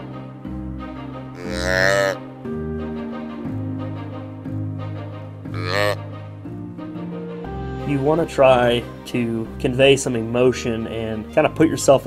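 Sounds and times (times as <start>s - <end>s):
background music: 0.0s - 12.0s
deer call bleat: 1.4s - 2.2s, 5.6s - 6.0s.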